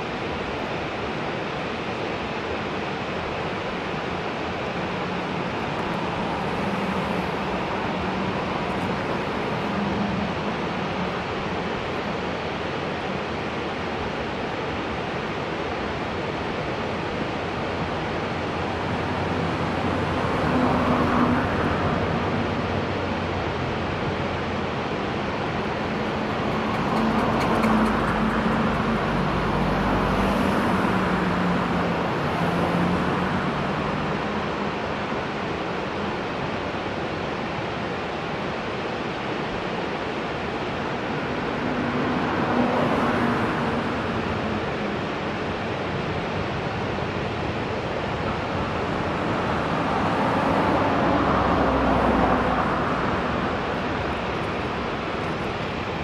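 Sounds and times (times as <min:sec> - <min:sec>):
road traffic noise: 0:00.0 - 0:56.0
vehicles passing: 0:04.2 - 0:13.2, 0:15.8 - 0:56.0.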